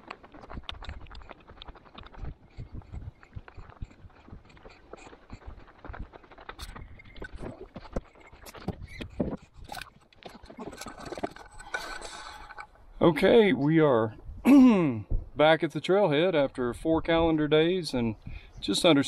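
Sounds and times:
footsteps on gravel: 0.0 - 12.3
trekking poles striking ground: 0.0 - 12.8.

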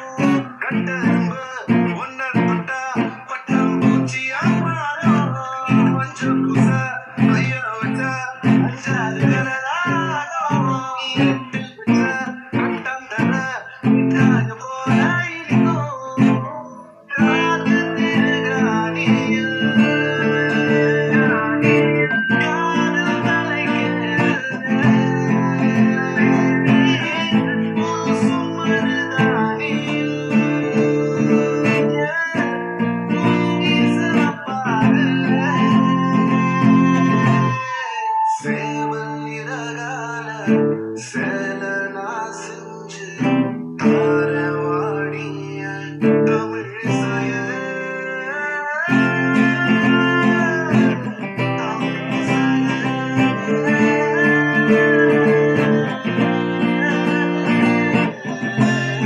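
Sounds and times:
acoustic guitar strumming with melody: 0.0 - 59.0.

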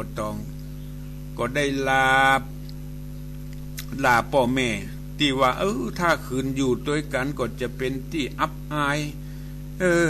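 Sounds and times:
electrical hum: 0.0 - 10.0
man chanting: 1.4 - 2.5, 3.9 - 10.0.

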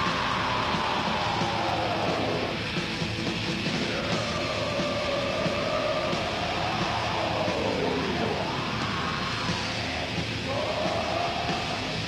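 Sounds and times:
metal band playing: 0.0 - 12.0.

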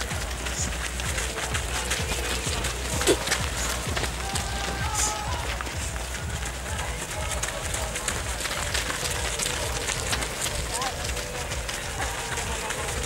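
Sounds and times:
runners' footsteps on dirt path: 0.0 - 13.0
scattered voices: 0.0 - 13.0.

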